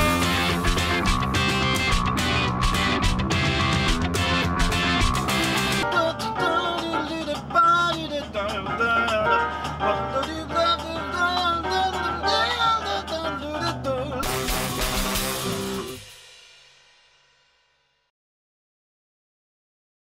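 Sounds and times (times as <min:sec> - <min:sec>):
electric guitar melody: 0:00.0 - 0:16.1
jazz-rock band music: 0:00.0 - 0:16.3
cymbal crash: 0:14.2 - 0:17.8.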